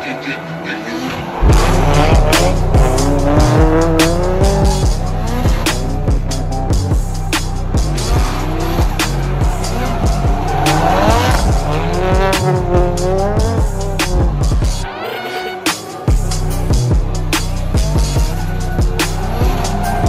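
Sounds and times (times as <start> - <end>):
car engines revving: 0.0 - 14.9, 16.2 - 20.0
music with heavy beat: 1.4 - 20.0.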